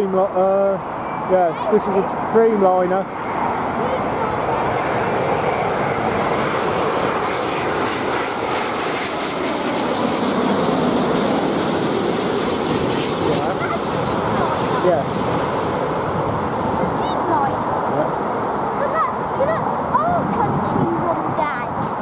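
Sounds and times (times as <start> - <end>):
jet airliner passing overhead: 0.0 - 22.0.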